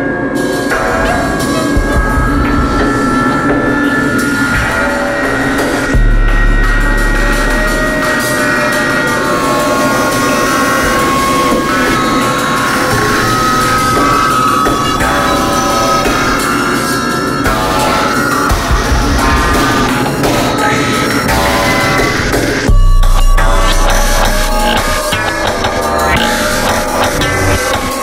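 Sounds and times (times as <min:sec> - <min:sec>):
drum and bass music: 0:00.0 - 0:28.0
deep sub-bass note: 0:04.6 - 0:08.1, 0:22.7 - 0:27.6.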